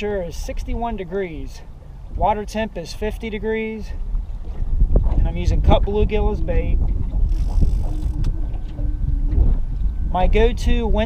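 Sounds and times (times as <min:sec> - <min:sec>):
wind buffeting microphone: 0:00.0 - 0:11.0
faint hum: 0:05.8 - 0:11.0.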